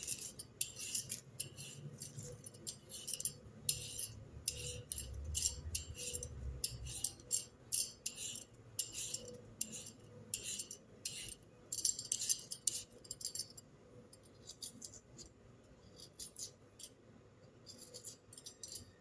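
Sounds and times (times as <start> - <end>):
peeler scraping potato skin: 0.0 - 13.4, 14.3 - 17.0, 17.6 - 19.0.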